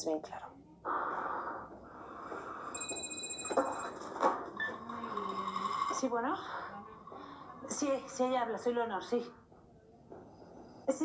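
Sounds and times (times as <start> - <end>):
mobile phone ringtone: 2.5 - 5.9.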